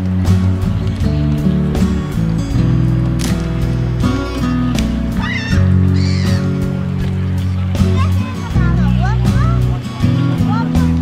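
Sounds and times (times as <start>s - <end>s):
music with sustained low chords: 0.0s - 11.0s.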